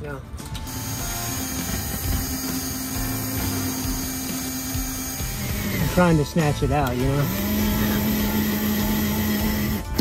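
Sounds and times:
electric drill drilling metal: 0.6s - 10.0s.

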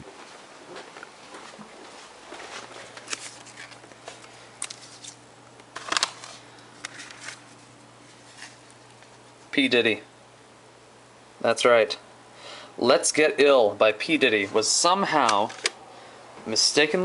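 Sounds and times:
faint steady hum: 0.0s - 17.0s
plastic cases clicking and rustling: 3.0s - 7.4s, 15.2s - 15.8s.

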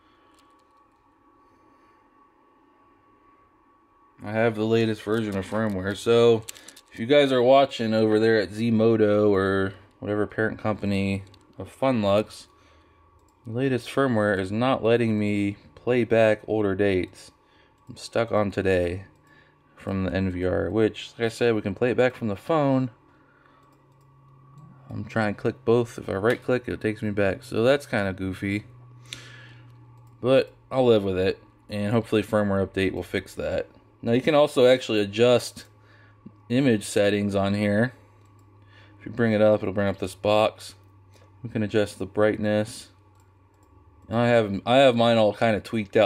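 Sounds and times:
thin steady high whine: 0.0s - 46.0s.

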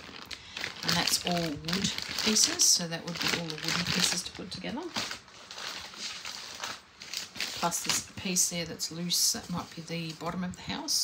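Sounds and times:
plastic bag crinkling: 0.0s - 10.4s.

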